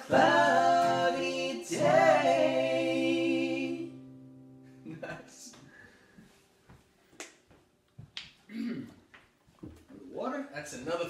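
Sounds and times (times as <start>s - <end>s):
acoustic guitar chord ringing: 0.0s - 6.1s.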